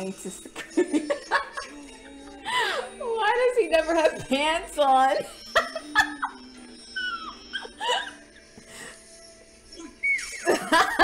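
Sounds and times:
woman giggling: 0:00.6 - 0:02.6, 0:05.3 - 0:08.6, 0:09.8 - 0:11.0.

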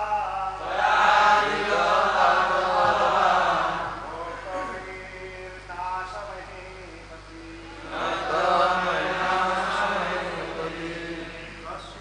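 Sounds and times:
voices chanting in unison: 0:00.6 - 0:04.1, 0:07.8 - 0:12.0.

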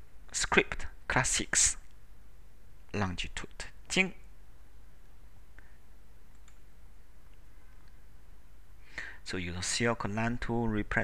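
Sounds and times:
low background hum: 0:00.0 - 0:11.0
computer mouse clicks: 0:06.3 - 0:06.7.

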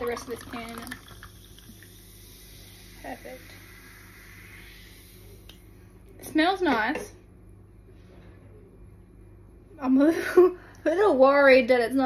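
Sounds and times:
fizzy drink poured into glass: 0:00.0 - 0:03.4.

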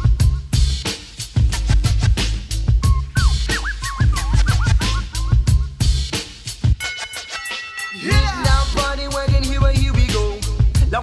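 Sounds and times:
hip hop drum beat with bass: 0:00.0 - 0:11.0
turntable scratching: 0:00.8 - 0:07.6.

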